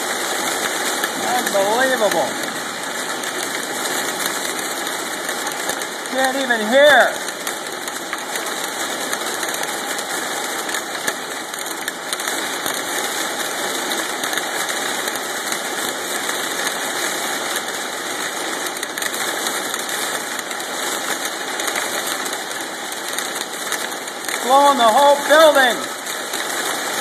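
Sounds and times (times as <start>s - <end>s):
hail and rain on window glass: 0.0s - 27.0s
person speaking: 1.2s - 2.6s, 6.1s - 7.3s, 24.4s - 26.0s.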